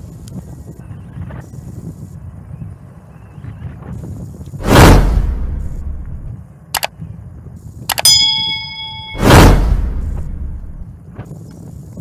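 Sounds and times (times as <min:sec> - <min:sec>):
notification bell ding: 0:07.9 - 0:09.4.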